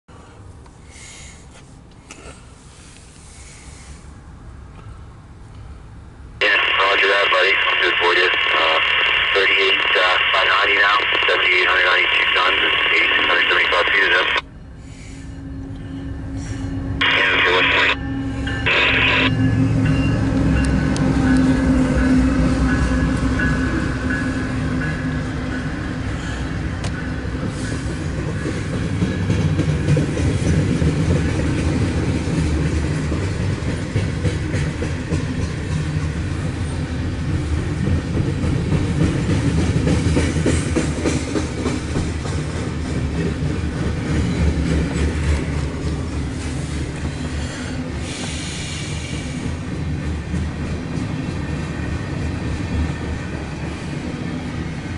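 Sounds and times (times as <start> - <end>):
train locomotives passing: 0.2 - 54.9
short radio bursts: 6.4 - 14.4, 17.0 - 18.0, 18.7 - 19.4
voice over scanner radio: 6.4 - 14.4, 17.0 - 18.0, 18.6 - 19.4.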